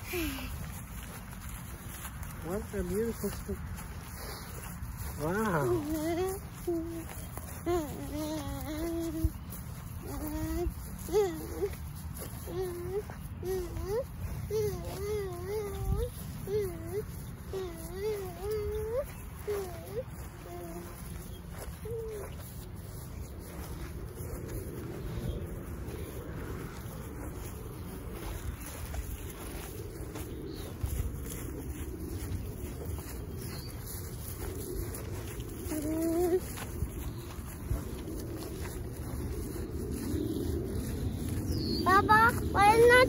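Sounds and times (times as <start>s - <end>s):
footsteps through long grass: 0.0s - 43.0s
wind rumbling on microphone: 0.0s - 43.0s.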